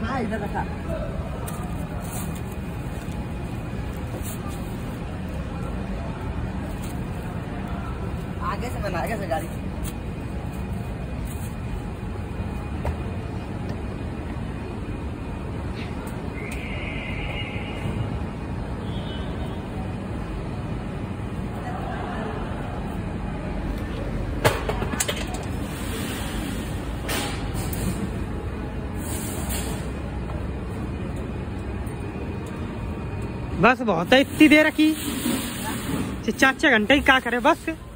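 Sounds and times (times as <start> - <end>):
short hiss: 29.0 - 29.9.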